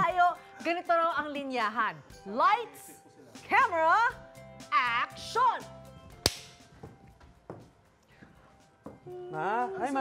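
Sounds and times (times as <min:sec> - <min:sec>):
sharp clap: 0:06.2 - 0:06.6.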